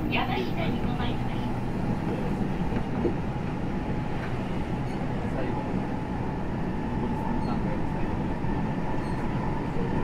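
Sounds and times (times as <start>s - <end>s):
train wheels rumbling on rails: 0.0s - 10.0s.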